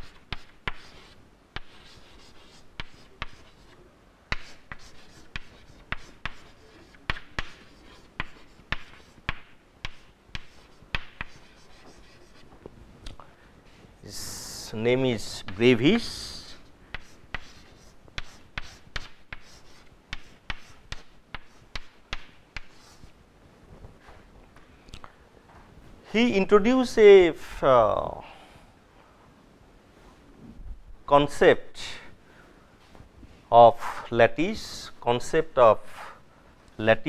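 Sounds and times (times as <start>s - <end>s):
chalk scratching: 0.0s - 12.5s, 15.4s - 23.2s
chalk tapping on chalkboard: 0.0s - 12.5s, 16.9s - 23.1s.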